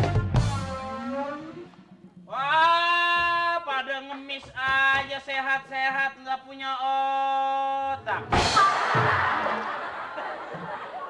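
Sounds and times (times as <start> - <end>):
stage music cue: 0.0 - 2.4.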